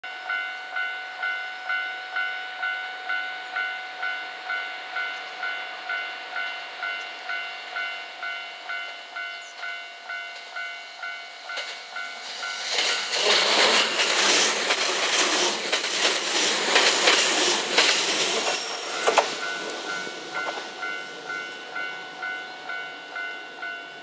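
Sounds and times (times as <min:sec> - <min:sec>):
electric train running: 0:00.2 - 0:24.0
level crossing bell ringing: 0:18.6 - 0:24.0.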